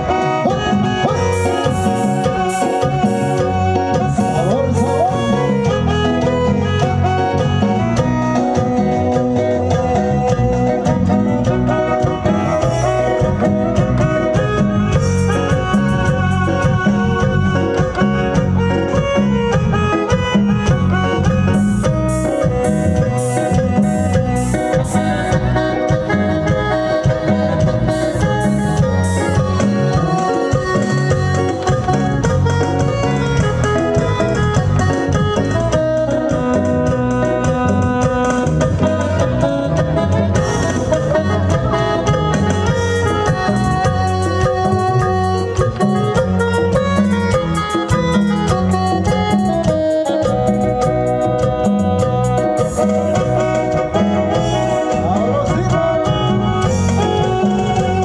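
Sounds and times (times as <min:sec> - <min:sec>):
electronic keyboard: 0:00.0 - 0:58.0
live band dance music: 0:00.0 - 0:58.0.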